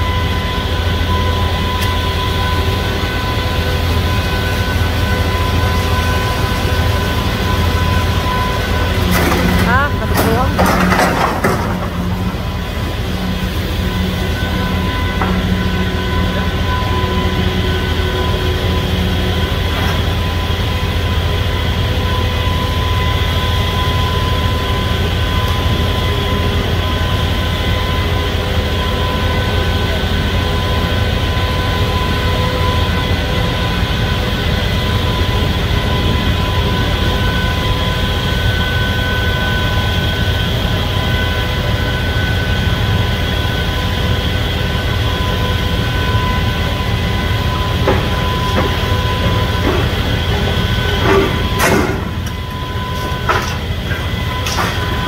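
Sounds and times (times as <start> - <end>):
excavator diesel and hydraulic drone: 0.0 - 55.0.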